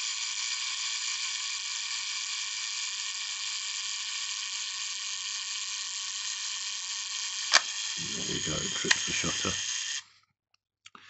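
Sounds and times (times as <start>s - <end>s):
clockwork self-timer buzzing whir: 0.0s - 10.1s.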